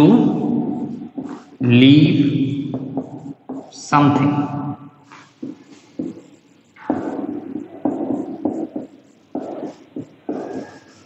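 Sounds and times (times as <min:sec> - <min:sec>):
marker scratching on whiteboard: 0:00.4 - 0:01.8, 0:02.7 - 0:03.9, 0:05.0 - 0:11.0.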